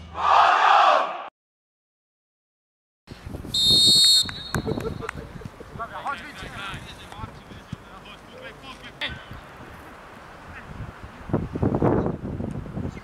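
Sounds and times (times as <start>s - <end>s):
referee's whistle: 3.5s - 4.9s.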